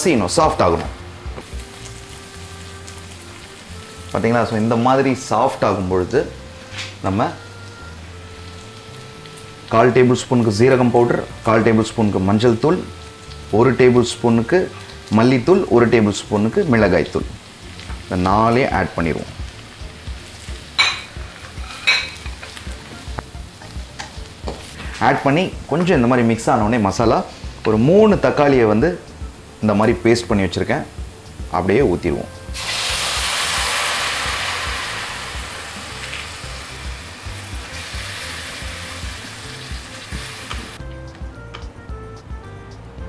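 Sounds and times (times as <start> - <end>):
vegetables sizzling in oil: 0.2 - 40.8.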